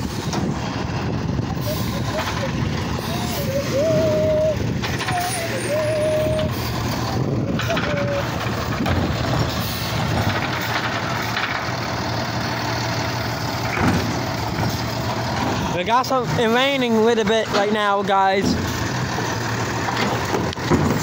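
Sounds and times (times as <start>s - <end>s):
diesel engine low hum: 0.0s - 21.0s.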